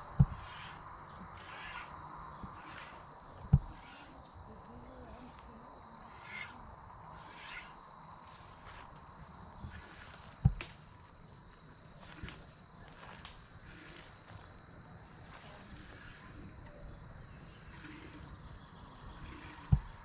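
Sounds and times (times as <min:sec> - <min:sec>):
insects droning: 0:00.0 - 0:20.0
faint calls: 0:06.0 - 0:07.8.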